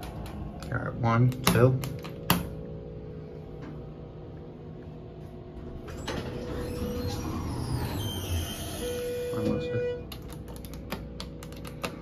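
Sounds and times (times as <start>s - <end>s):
low hum in elevator cab: 0.0s - 12.0s.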